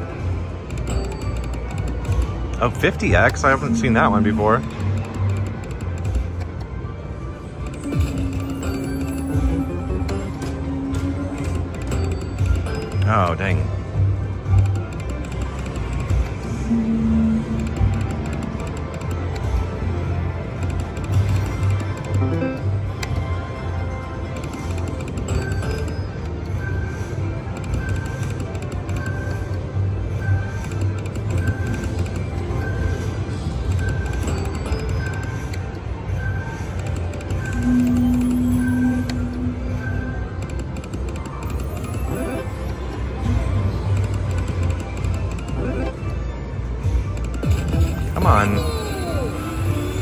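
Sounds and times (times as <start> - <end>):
electronic slot machine music: 0.0 - 50.0
held low tone: 16.5 - 17.8.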